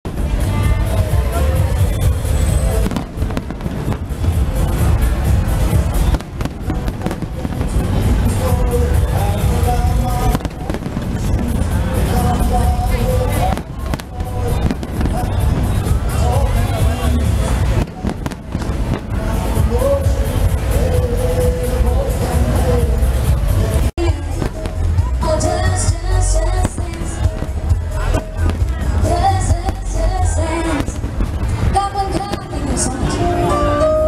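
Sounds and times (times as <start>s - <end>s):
fireworks deep bangs: 0.1s - 33.3s
fireworks sharp cracks: 0.1s - 33.3s
music: 0.1s - 34.0s.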